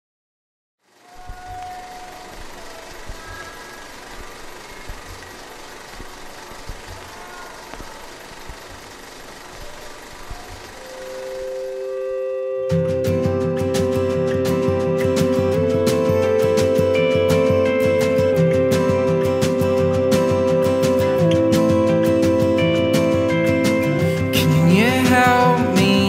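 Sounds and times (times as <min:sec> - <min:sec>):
record surface crackle and hiss: 0:00.8 - 0:21.3
held musical notes: 0:00.8 - 0:26.0
soft low thumps and clicks: 0:02.4 - 0:10.8.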